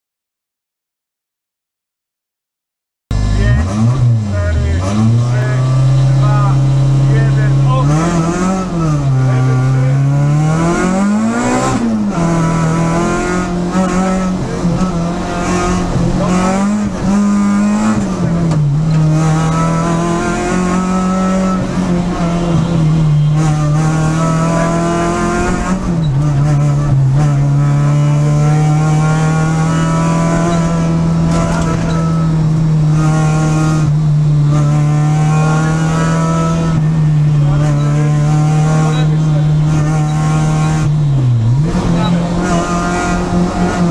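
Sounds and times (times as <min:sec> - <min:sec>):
rally car engine revving: 0:03.1 - 0:43.9.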